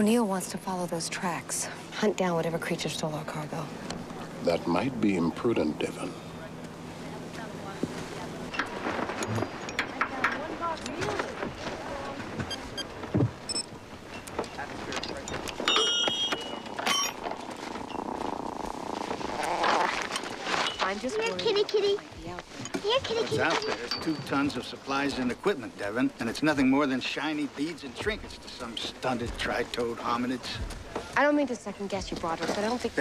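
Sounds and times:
people talking: 0.0s - 3.7s, 4.4s - 8.5s, 9.9s - 12.8s, 20.8s - 33.0s.

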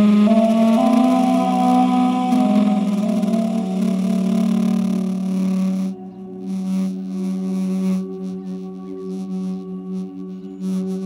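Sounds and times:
duduk holding a low note: 0.0s - 6.6s.

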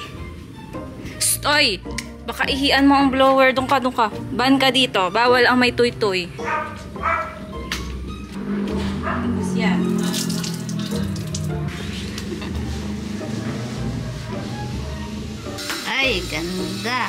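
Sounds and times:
background music: 0.0s - 17.0s
water splashing on tiled floor: 9.9s - 12.4s.

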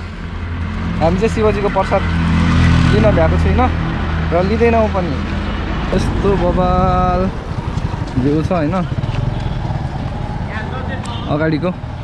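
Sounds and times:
wind rushing over microphone: 5.4s - 10.8s
motorcycle engine droning: 5.5s - 12.0s.

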